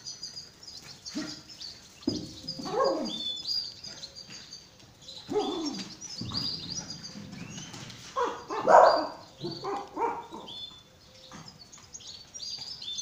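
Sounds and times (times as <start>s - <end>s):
birds chirping: 0.0s - 13.0s
small dogs yapping and whining: 2.6s - 3.3s, 5.2s - 6.0s, 8.2s - 10.5s.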